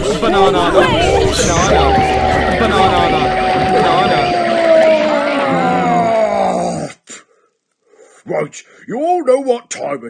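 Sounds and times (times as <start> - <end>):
long tone sliding down in pitch: 0.0 - 6.7
jumble of cartoon voices: 0.0 - 7.2.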